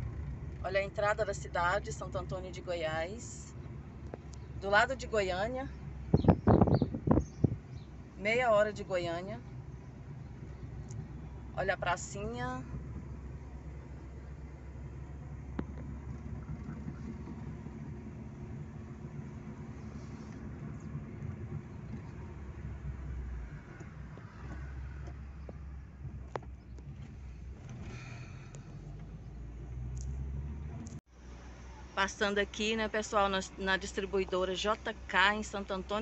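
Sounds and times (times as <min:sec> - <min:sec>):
car engine and road rumble: 0:00.0 - 0:36.0.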